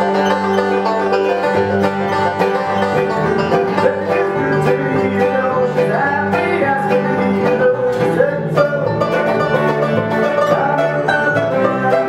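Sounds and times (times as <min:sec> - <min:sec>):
acoustic guitar: 0:00.0 - 0:12.0
banjo picking: 0:00.0 - 0:12.0
mandolin: 0:00.0 - 0:12.0
upright bass: 0:00.0 - 0:12.0.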